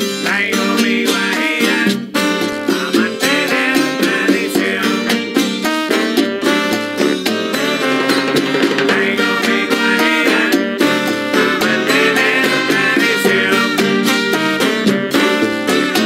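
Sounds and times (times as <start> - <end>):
fast plucked guitar solo: 0.0 - 16.0
salsa band rhythm and percussion: 0.0 - 16.0.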